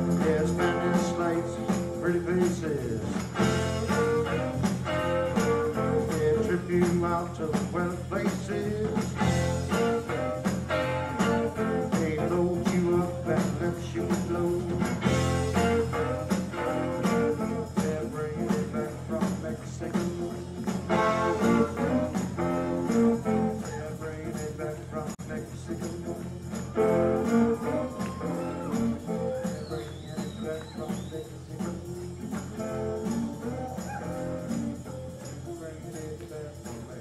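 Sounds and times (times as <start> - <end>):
blues-rock band playing: 0.0 - 23.7, 26.5 - 29.6
steady drum beat: 0.0 - 34.8
guitar: 0.0 - 37.0.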